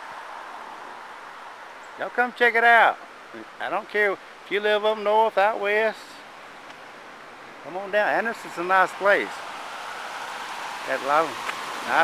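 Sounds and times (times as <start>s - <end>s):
river water flowing: 0.0s - 12.0s.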